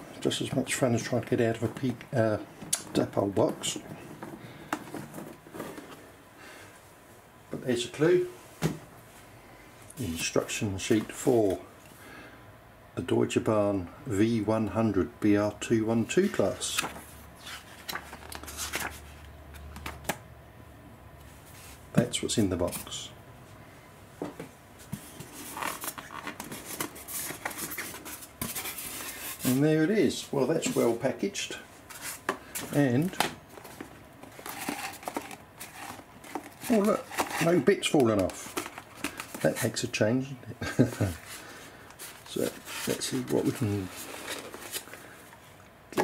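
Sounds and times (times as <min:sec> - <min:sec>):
cardboard scraping and rustling: 0:24.8 - 0:31.0, 0:31.9 - 0:39.8, 0:40.8 - 0:45.2
hands handling foam packaging: 0:24.8 - 0:31.2, 0:31.8 - 0:39.9, 0:40.6 - 0:46.0.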